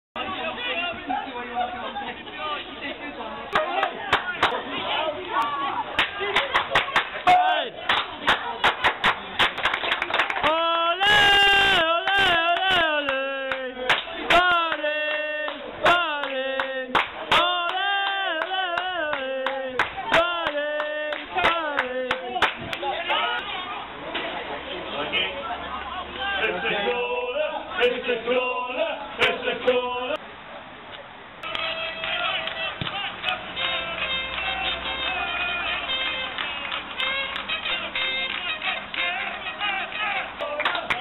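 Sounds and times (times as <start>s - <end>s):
crowd chattering: 0.2s - 41.0s
sharp hand claps: 3.5s - 4.6s, 5.3s - 10.6s, 12.1s - 14.8s, 15.5s - 23.5s, 31.4s - 35.2s, 35.8s - 41.0s
football supporters chanting: 10.4s - 24.0s, 31.9s - 36.2s.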